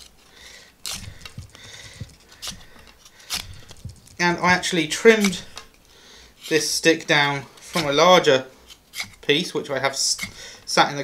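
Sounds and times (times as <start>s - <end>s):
knife carving wood: 0.0s - 11.0s.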